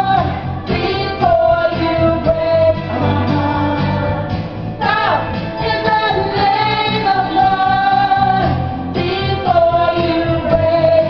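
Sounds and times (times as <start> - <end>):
karaoke singing into microphone: 0.0 - 11.0
recorded backing track: 0.0 - 11.0.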